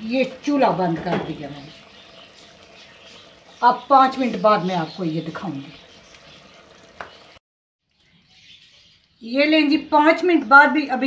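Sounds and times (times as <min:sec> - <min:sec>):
faint simmering hiss: 0:00.0 - 0:07.4.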